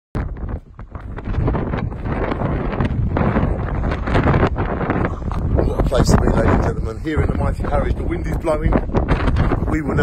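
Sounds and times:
wind buffeting microphone: 0:00.2 - 0:10.0.

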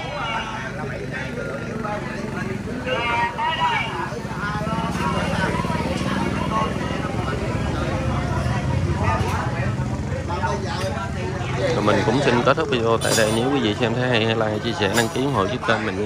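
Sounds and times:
people conversing: 0:00.0 - 0:16.0.

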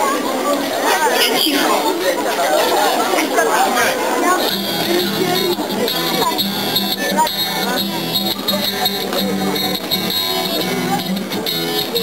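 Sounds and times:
crowd chatter: 0:00.0 - 0:12.0
acoustic guitar strumming: 0:00.6 - 0:02.8, 0:04.2 - 0:12.0.

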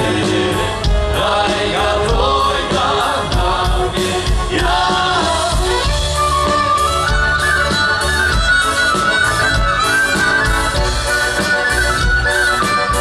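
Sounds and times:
live folk band music: 0:00.0 - 0:13.0.

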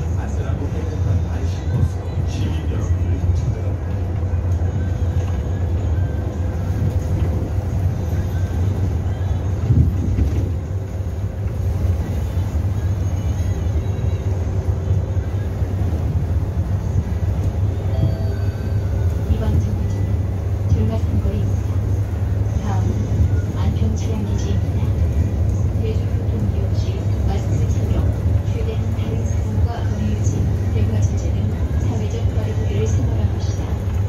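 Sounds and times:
bus engine and road rumble: 0:00.0 - 0:34.0.

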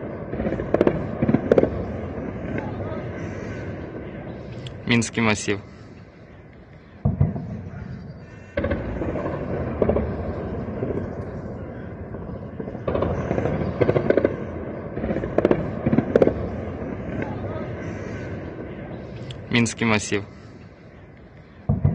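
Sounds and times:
gunshots: 0:00.0 - 0:04.4, 0:08.5 - 0:19.0
steady background noise: 0:00.0 - 0:21.9.

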